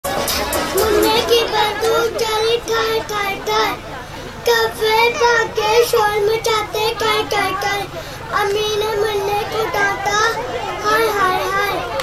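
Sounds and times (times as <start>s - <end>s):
boy chanting: 0.7s - 12.0s.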